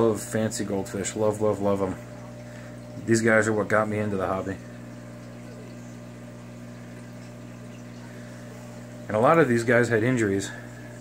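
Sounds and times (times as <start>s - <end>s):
aquarium equipment hum: 0.0s - 11.0s
bubbling water: 0.0s - 11.0s.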